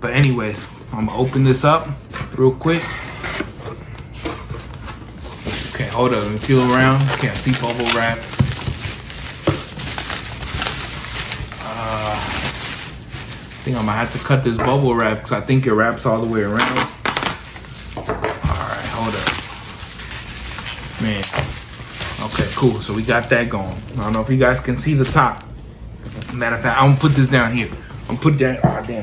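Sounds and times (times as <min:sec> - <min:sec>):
bubble wrap crinkling: 0:00.3 - 0:29.0
cardboard rustling and scraping: 0:00.5 - 0:29.0.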